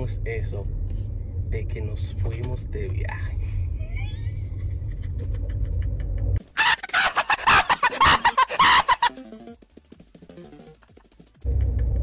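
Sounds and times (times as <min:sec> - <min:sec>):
car cabin rumble: 0:00.0 - 0:06.4
man laughing: 0:03.4 - 0:09.3.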